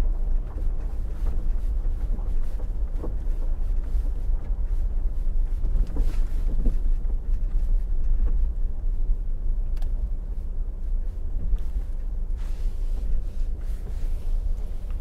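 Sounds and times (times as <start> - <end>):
vehicle road noise: 0.0 - 15.0.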